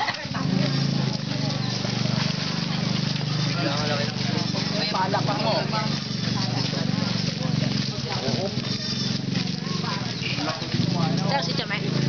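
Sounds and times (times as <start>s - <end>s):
people chatting: 0.0s - 12.0s.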